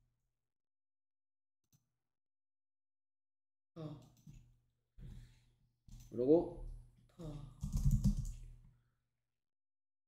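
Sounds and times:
typing on computer keyboard: 7.6 - 8.5.

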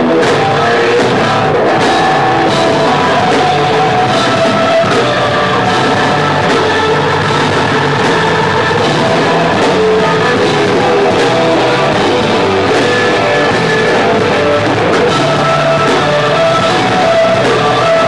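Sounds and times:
bass guitar: 0.0 - 18.0
drum kit: 0.0 - 18.0
electric guitar: 0.0 - 18.0.

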